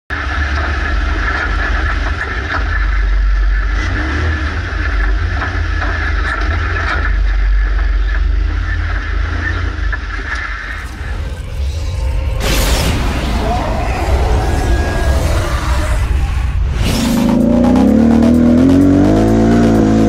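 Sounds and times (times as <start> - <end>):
off-road vehicle engine: 0.1 - 20.0.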